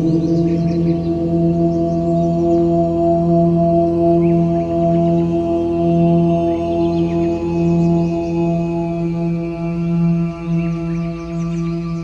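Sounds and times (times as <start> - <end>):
faint high chirps: 0.0 - 1.3
low chanted drone: 0.0 - 12.0.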